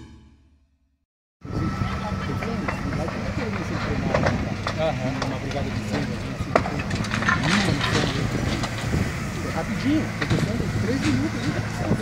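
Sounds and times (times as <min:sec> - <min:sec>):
people talking: 0:01.5 - 0:12.0.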